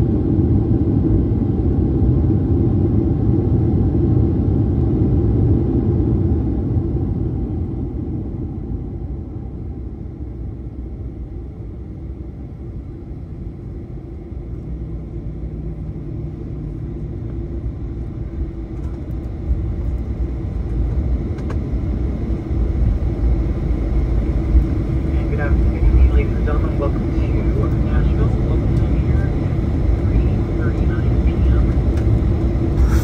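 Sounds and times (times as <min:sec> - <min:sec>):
low rumble of engines and wheels: 0:00.0 - 0:33.0.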